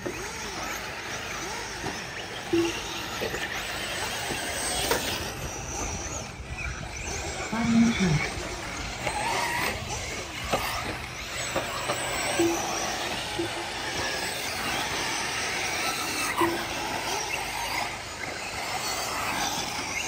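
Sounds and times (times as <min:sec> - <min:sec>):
small engines buzzing and revving: 0:00.0 - 0:20.0.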